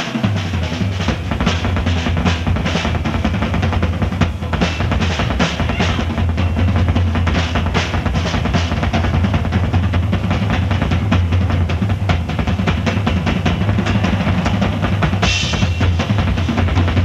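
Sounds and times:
rapid drum kit playing: 0.0 - 17.0.

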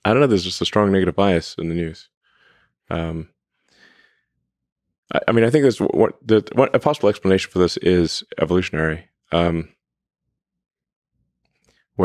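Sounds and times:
soft breath: 2.2 - 2.8, 3.5 - 4.4
man saying um: 2.9 - 3.2.

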